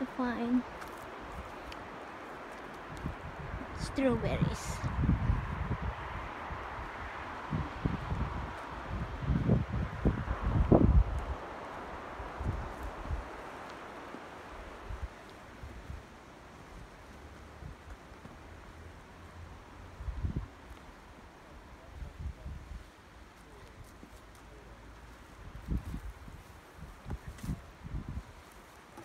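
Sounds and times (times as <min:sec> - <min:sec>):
wind gusting on microphone: 0:00.0 - 0:17.9, 0:19.4 - 0:24.0, 0:25.3 - 0:28.6.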